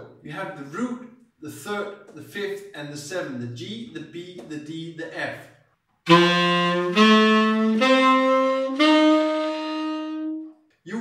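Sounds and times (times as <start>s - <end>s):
tenor saxophone held notes: 6.1s - 10.6s.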